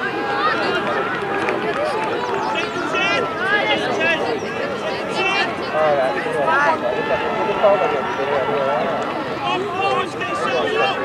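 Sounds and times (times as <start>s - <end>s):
voices talking and calling out: 0.0s - 11.0s.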